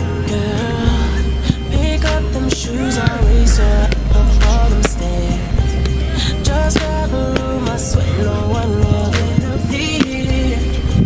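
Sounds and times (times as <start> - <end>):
r and b song with deep bass: 0.0 - 11.0.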